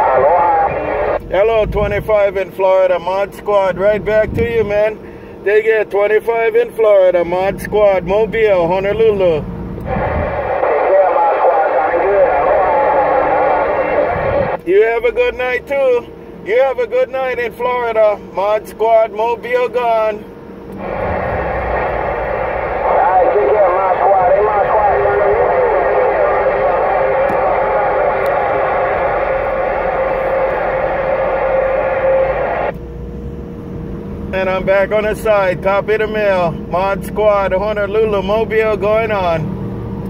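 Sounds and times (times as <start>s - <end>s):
radio static: 0.0s - 2.4s, 7.5s - 20.0s, 20.7s - 32.8s
garbled radio voice: 0.0s - 4.9s, 5.5s - 20.2s, 20.8s - 32.7s.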